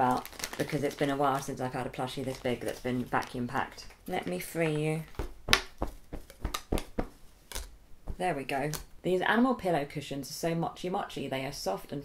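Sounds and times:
plastic bag crinkling: 0.0 - 7.7.

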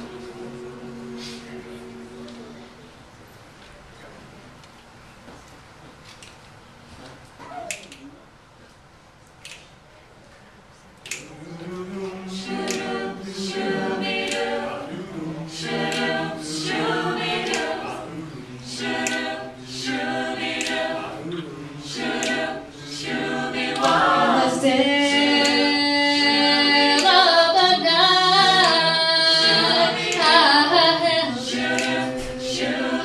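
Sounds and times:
a cappella group singing: 0.0 - 3.0, 11.0 - 33.0.

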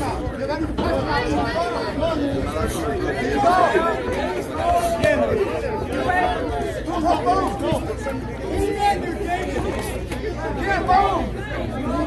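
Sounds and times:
babble of chatter: 0.0 - 12.0.

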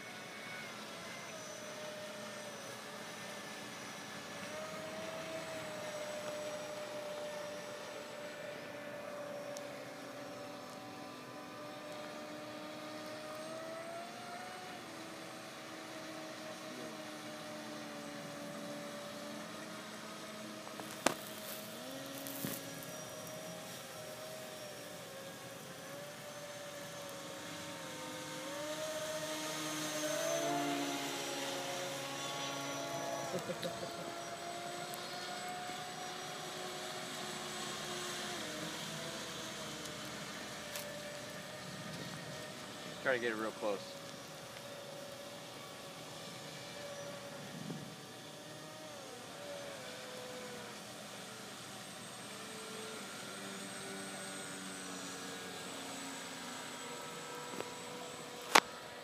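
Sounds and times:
electric rc motors whining: 0.0 - 59.0.

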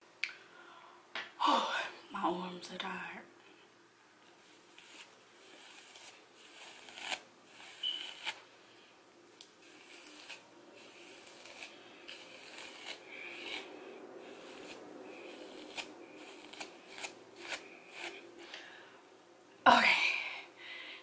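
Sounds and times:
comb scratching through hair: 4.4 - 8.5, 9.6 - 18.2.

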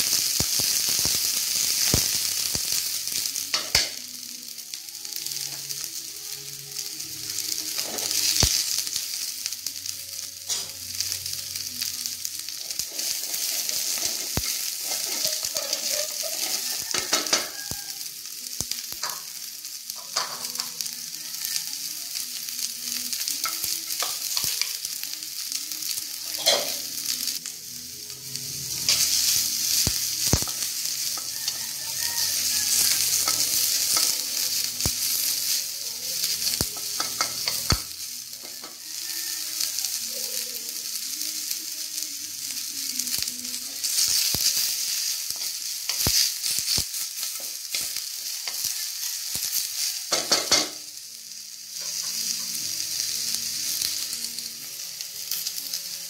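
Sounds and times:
onions sizzling in a wok: 0.0 - 56.0
spatula scraping a pan: 12.9 - 17.5.

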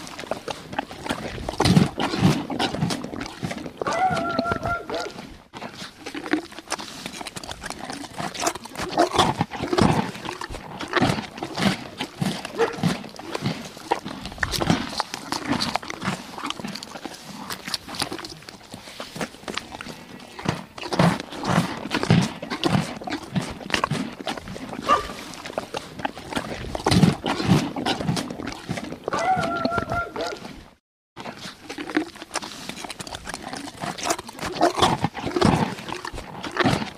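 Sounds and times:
zebras calling: 3.8 - 5.1, 29.1 - 30.4.

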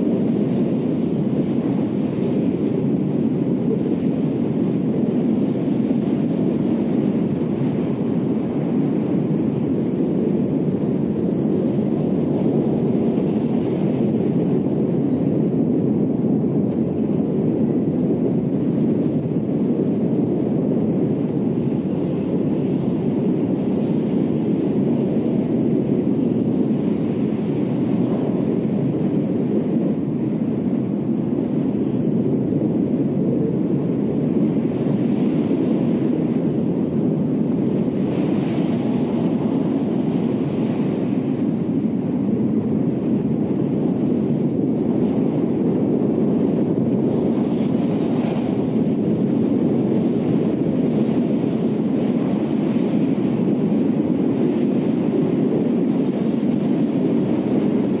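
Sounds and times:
low rushing storm wind: 0.0 - 58.0.

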